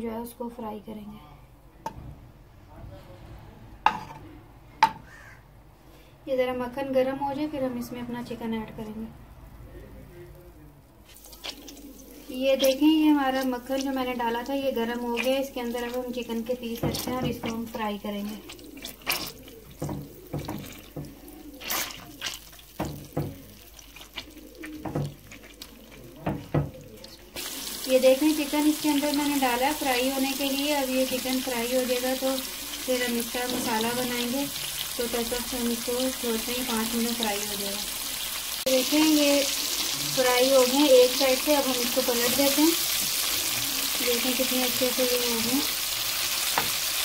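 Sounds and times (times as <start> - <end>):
continuous frying sizzle: 9.7 - 47.0
plastic spoon knocking on pan: 16.7 - 17.7, 19.7 - 21.2, 22.8 - 23.6, 24.8 - 25.2, 26.2 - 26.8, 33.4 - 34.1
chicken pieces splatting in butter: 18.4 - 32.9.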